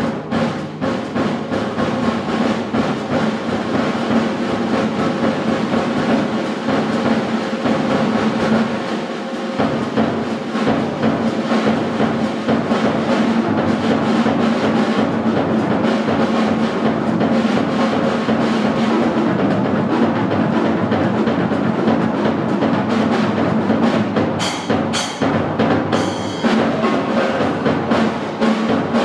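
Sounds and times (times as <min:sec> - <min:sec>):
drum kit hits: 0:00.0 - 0:29.0.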